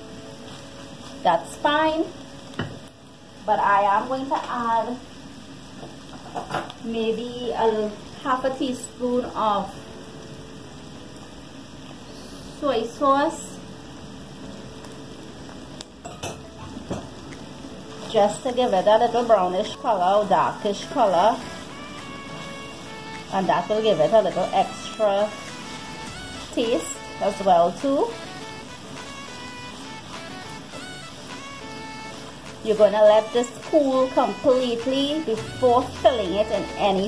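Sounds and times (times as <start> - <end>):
meat sizzling in a frying pan: 0.0 - 37.0
soft background music: 0.0 - 37.0.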